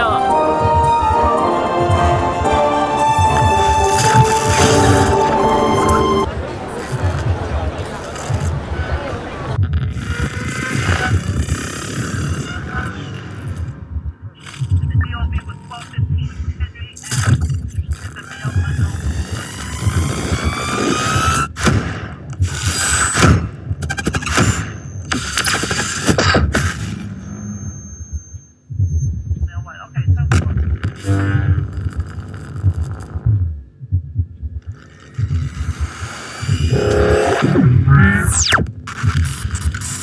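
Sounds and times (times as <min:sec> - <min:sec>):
electronic soundtrack sweeping tones: 0:00.0 - 0:06.4, 0:31.0 - 0:31.9, 0:36.5 - 0:38.7
crowd voices: 0:00.0 - 0:09.6.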